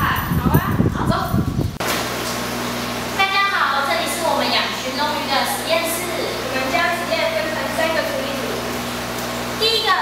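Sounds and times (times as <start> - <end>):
woman speaking: 0.0 - 1.5, 3.2 - 8.7, 9.6 - 10.0
steady low hum: 0.0 - 10.0.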